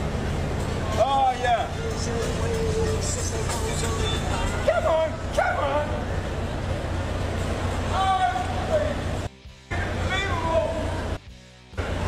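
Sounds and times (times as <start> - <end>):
low city traffic rumble: 0.0 - 12.0
people shouting: 4.0 - 6.0, 7.9 - 8.9.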